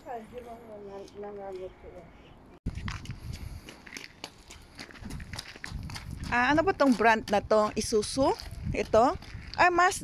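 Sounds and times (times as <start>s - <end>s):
footsteps crunching on gravel: 2.7s - 10.0s.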